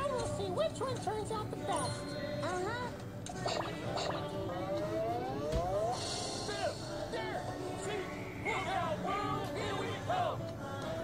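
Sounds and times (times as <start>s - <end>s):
upward gliding pitched sound: 4.2s - 6.0s.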